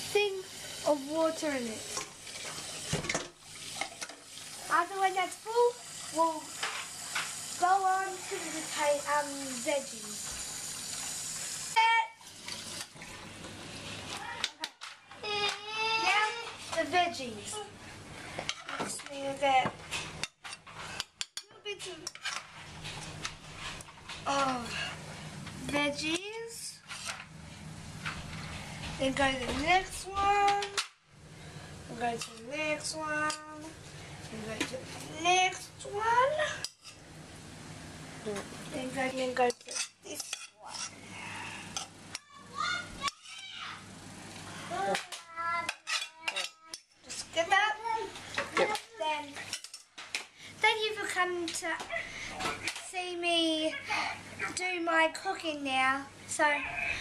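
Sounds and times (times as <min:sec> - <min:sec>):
utensils clinking on china plates: 0:39.5 - 0:41.0, 0:45.7 - 0:47.3
cutlery and plates clinking: 0:44.9 - 0:47.3, 0:49.4 - 0:50.1.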